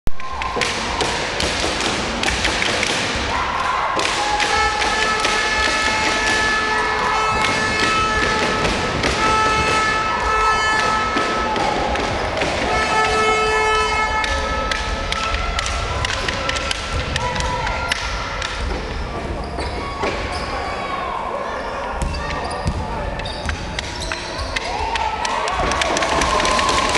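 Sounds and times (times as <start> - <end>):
court noise echoing: 0.1 - 26.9
players' voices echoing: 0.4 - 26.2.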